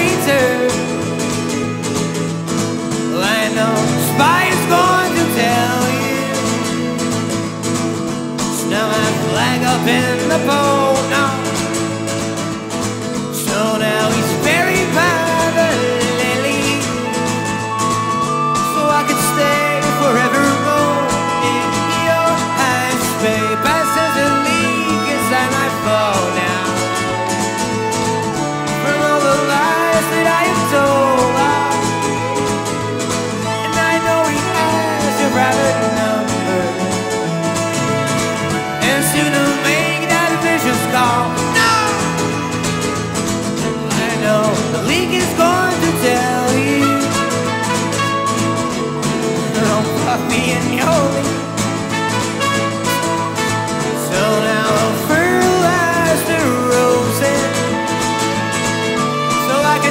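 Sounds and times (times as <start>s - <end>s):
acoustic guitar strumming: 0.0s - 59.9s
trumpet held notes: 51.9s - 54.0s.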